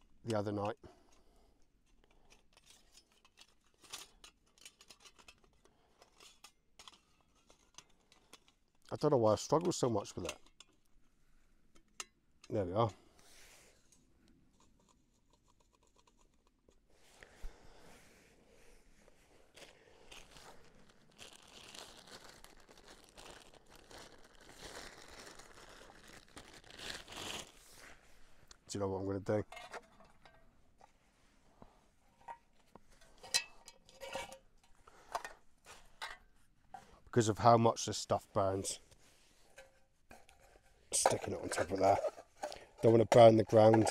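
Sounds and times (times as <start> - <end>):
stuff sack crinkling and rustling: 19.0 - 28.3.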